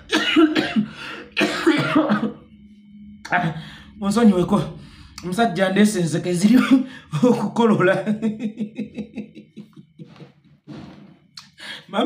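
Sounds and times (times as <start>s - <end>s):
man coughing: 0.0s - 2.5s.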